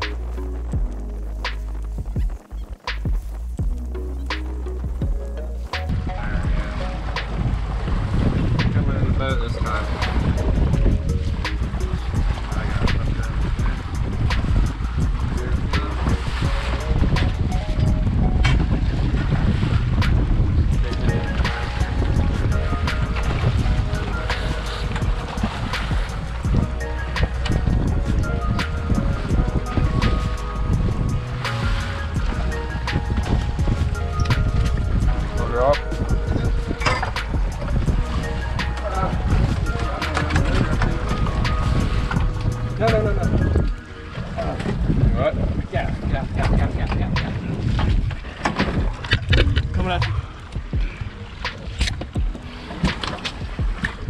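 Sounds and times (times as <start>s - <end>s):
background music: 0.0s - 54.0s
outboard boat engine: 0.0s - 54.0s
water slapping against hull: 0.0s - 54.0s
wind buffeting microphone: 0.0s - 54.0s.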